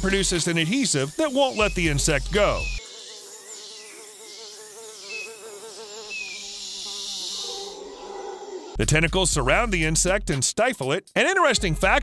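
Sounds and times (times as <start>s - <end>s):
fly buzzing: 0.4s - 8.8s.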